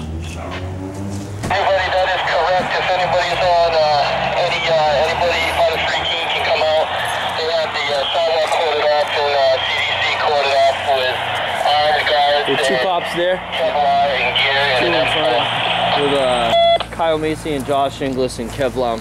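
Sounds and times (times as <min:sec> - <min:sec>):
thin talking through speaker: 0:01.5 - 0:16.6.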